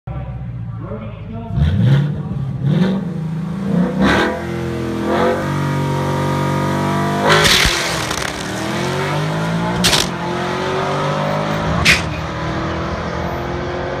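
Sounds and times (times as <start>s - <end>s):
car engine revving: 1.5s - 14.0s
gear shift crack: 7.2s - 8.8s, 9.6s - 10.3s.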